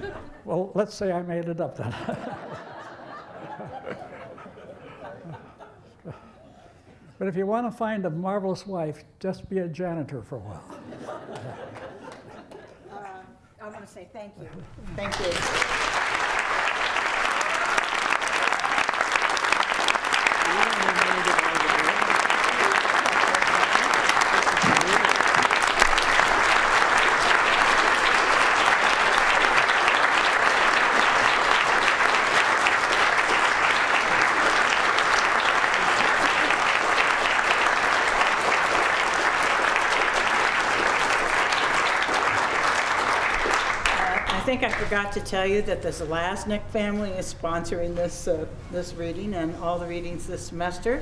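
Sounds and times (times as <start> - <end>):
audience applauding: 14.9 - 45.0.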